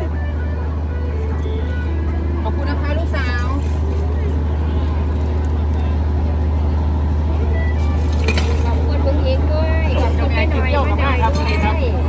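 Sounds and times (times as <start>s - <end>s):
faint crowd chatter: 0.0s - 12.0s.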